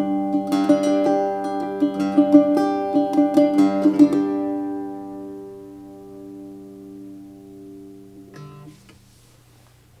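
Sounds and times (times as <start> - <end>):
low plucked note: 0.0 - 9.0
mandocello chord ringing: 0.0 - 9.0.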